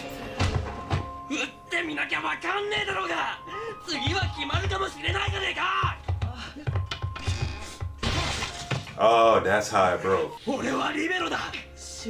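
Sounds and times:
people talking: 1.3 - 6.0.

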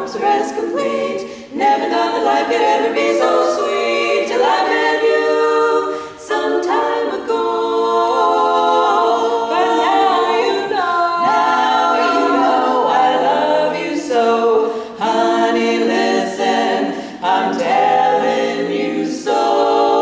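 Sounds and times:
women singing close harmony: 0.0 - 20.0.

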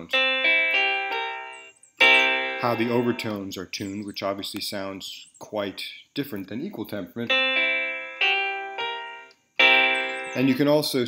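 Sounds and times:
piano notes ringing: 0.0 - 3.9, 7.2 - 11.0.

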